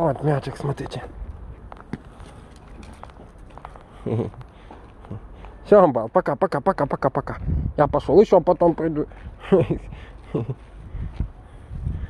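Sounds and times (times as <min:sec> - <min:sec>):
footsteps on gravel: 0:01.3 - 0:05.6.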